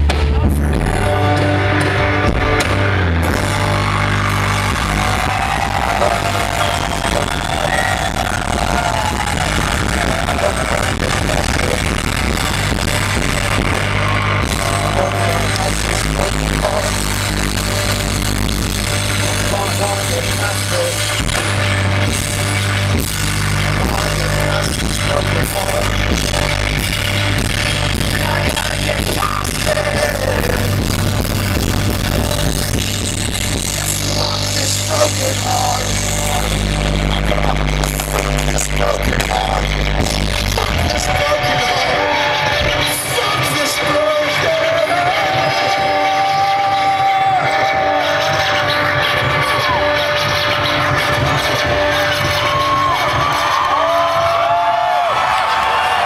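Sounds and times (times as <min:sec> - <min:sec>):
live rock band through pa: 0:00.0 - 0:56.0.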